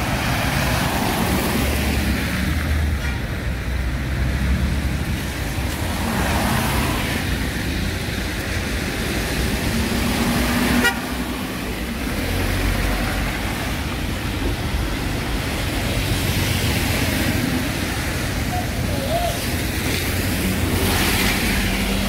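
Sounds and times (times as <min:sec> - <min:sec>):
cars passing on wet road: 0:00.0 - 0:22.0
vehicle horn honking: 0:10.8 - 0:11.1.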